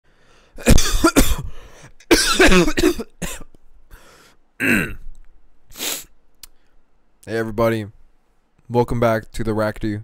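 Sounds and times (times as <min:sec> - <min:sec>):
person coughing: 0:00.6 - 0:03.5, 0:04.6 - 0:05.1.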